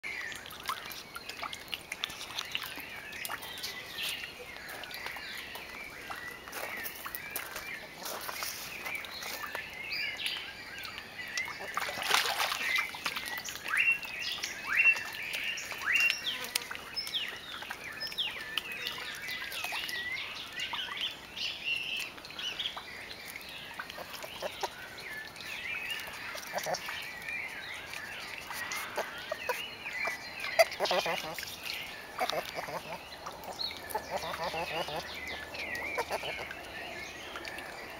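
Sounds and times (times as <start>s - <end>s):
birds chirping and calling: 2.1s - 37.9s.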